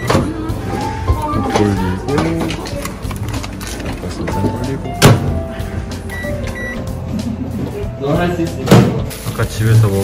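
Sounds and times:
microwave oven beeps: 0:00.0 - 0:00.4, 0:06.1 - 0:07.0.

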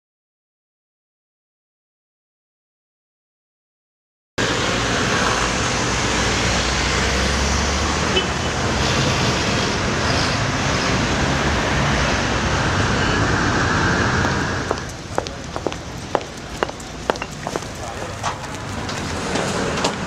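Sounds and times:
loud rushing traffic noise: 0:04.4 - 0:20.0.

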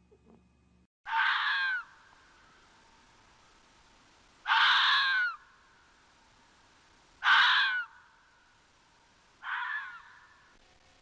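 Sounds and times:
fox screaming calls: 0:01.1 - 0:02.0, 0:04.4 - 0:05.5, 0:07.2 - 0:08.2, 0:09.4 - 0:10.5.

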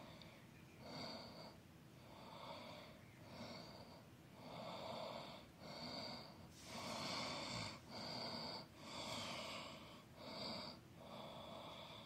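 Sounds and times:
close breathing: 0:00.0 - 0:12.0.

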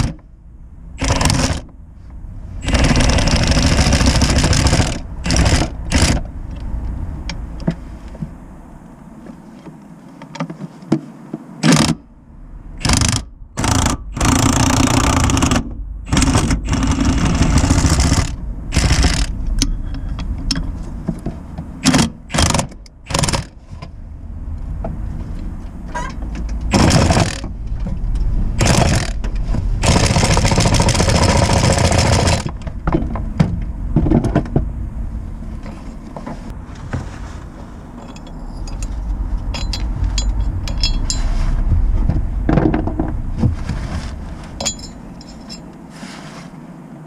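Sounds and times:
power tool driving a bolt: 0:01.0 - 0:01.7, 0:02.6 - 0:06.2, 0:11.6 - 0:12.0, 0:12.8 - 0:19.3, 0:21.8 - 0:23.5, 0:28.6 - 0:29.2.

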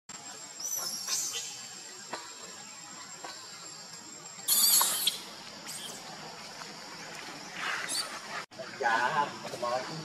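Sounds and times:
baby monkey screaming: 0:04.5 - 0:06.0.

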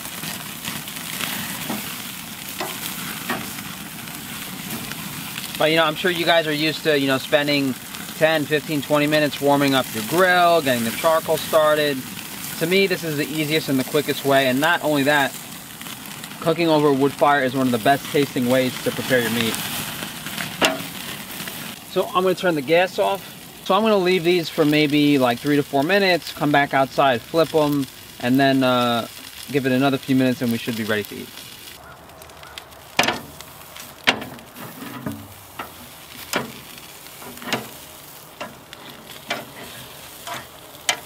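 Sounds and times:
ribs sizzling on grill: 0:00.0 - 0:41.0
metal tongs clacking: 0:38.4 - 0:41.0.

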